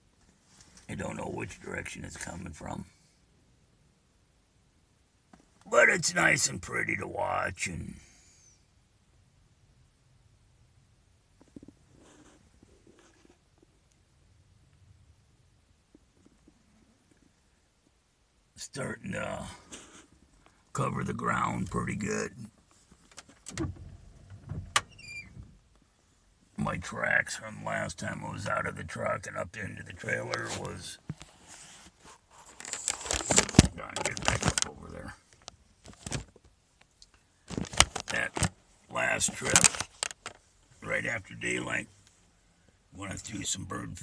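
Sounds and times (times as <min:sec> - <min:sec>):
faint rustle: 0:00.0 - 0:03.3, 0:11.3 - 0:15.1, 0:19.4 - 0:21.6, 0:29.8 - 0:42.9.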